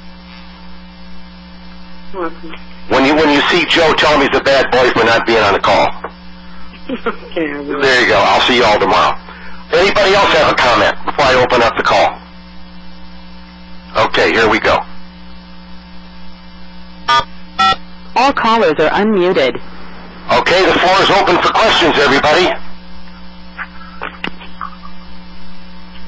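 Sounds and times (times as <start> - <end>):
electrical hum: 0.0 - 26.0
faint phone line hiss: 19.4 - 23.2.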